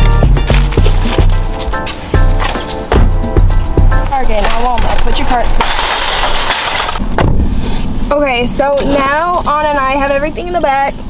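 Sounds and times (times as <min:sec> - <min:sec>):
shopping cart rattling on asphalt: 0:04.0 - 0:07.0.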